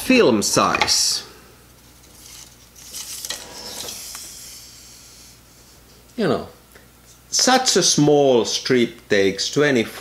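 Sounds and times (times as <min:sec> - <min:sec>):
plastic film rustling: 0:01.8 - 0:04.2.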